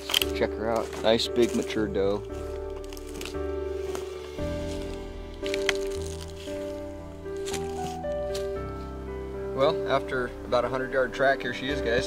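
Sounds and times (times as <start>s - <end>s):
background music chords and bass: 0.0s - 12.0s.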